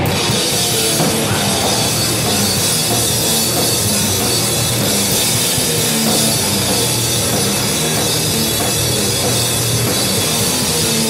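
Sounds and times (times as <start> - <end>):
bass guitar: 0.0 - 11.0
drum kit with crashing cymbals: 0.0 - 11.0
electric guitar: 0.0 - 11.0.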